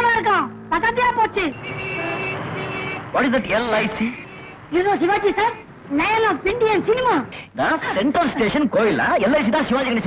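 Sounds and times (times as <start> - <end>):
car and street traffic noise: 0.0 - 10.0.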